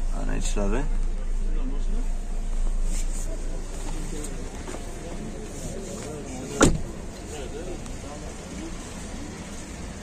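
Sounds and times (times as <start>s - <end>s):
crowd chatter: 0.5s - 10.0s
car door shutting: 6.5s - 7.1s.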